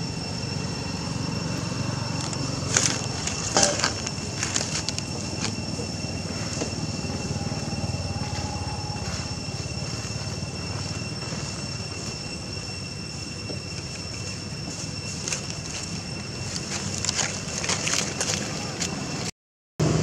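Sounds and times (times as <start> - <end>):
constant low rumble: 0.0 - 20.0
thin high whine: 0.0 - 20.0.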